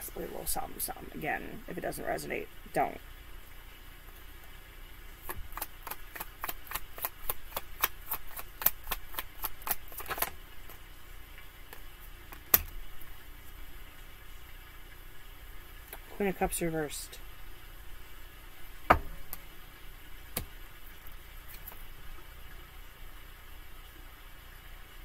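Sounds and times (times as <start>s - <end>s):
cards shuffling clicks: 5.3s - 10.8s.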